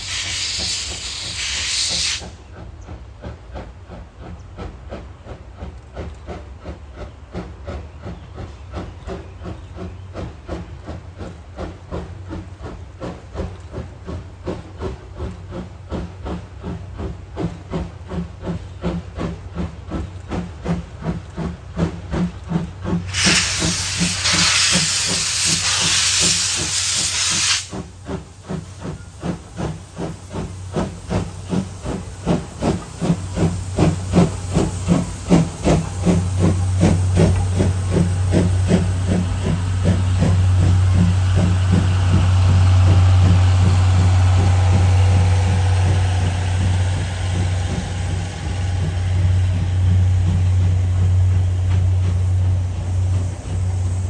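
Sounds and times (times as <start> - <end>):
steam hissing: 0.0 - 54.0
steam locomotive exhaust chuffing: 0.0 - 54.0.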